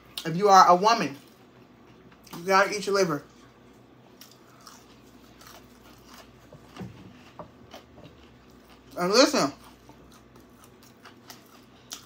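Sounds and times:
chewing crunches: 0:03.3 - 0:12.0.

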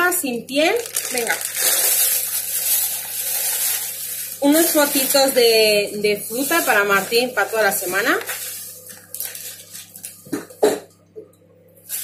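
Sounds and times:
person coughing: 0:10.3 - 0:10.9.

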